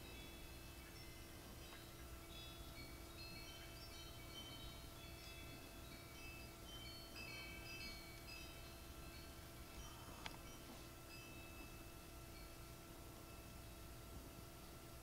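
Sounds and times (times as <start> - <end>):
high chiming tones: 0.0 - 14.6
low steady hum: 0.0 - 15.0.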